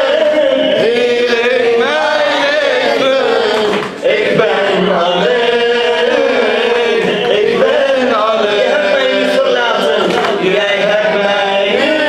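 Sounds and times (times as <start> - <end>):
man chanting a lament: 0.0 - 12.0.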